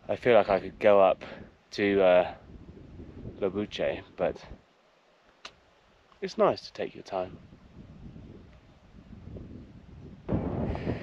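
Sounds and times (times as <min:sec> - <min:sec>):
wind buffeting microphone: 0:00.0 - 0:04.6, 0:07.2 - 0:11.0.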